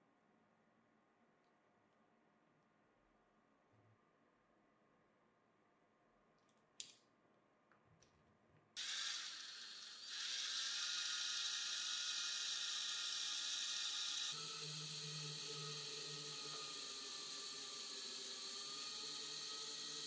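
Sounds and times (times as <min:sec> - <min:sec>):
electric drill whirring: 0:08.8 - 0:20.0.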